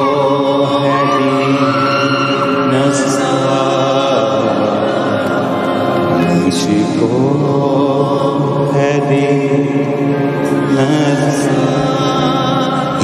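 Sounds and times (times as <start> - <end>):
chant-like singing voices: 0.0 - 13.0.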